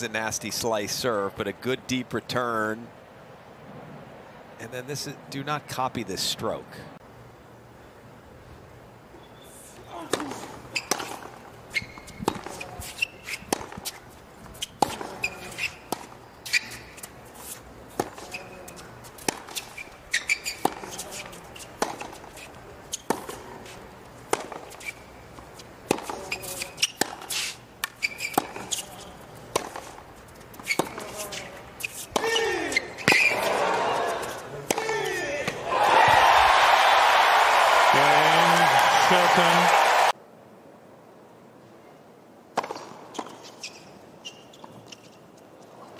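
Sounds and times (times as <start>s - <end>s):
racquets hitting tennis ball: 9.8s - 36.5s, 42.5s - 43.8s
crowd cheering and applause: 35.6s - 40.2s.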